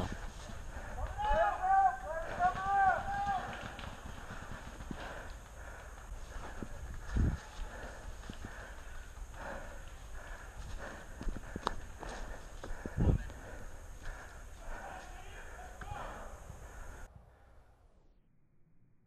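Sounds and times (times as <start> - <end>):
distant voice calling: 0.0 - 5.3, 12.8 - 17.1
running footsteps: 0.0 - 17.1.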